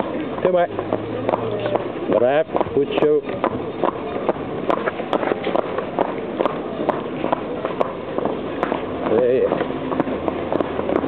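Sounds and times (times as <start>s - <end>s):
horse hooves clip-clopping on pavement: 0.0s - 11.0s.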